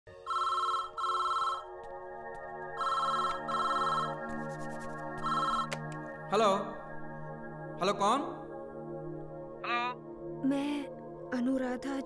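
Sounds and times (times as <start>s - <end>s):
soft background music: 0.1s - 12.0s
telephone ringing: 0.2s - 1.7s, 2.8s - 4.2s, 5.2s - 5.7s.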